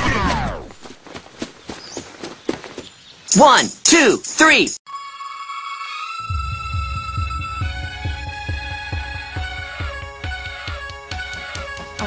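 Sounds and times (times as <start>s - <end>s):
cartoon footsteps running: 0.2s - 3.7s.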